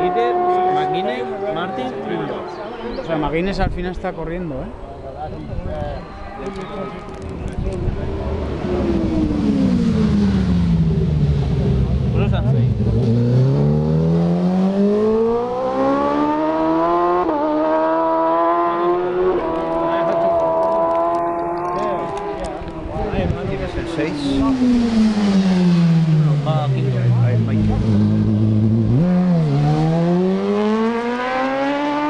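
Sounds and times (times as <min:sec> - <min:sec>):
racing motorcycle engine: 0:00.0 - 0:02.8, 0:07.7 - 0:32.0.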